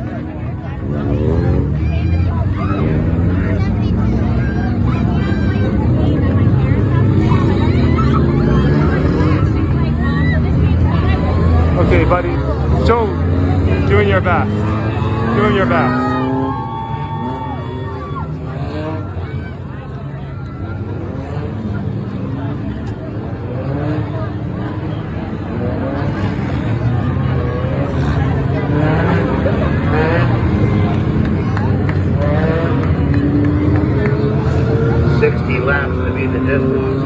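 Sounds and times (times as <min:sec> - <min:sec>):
crowd chatter: 0:00.0 - 0:37.0
race car engines accelerating: 0:00.0 - 0:37.0.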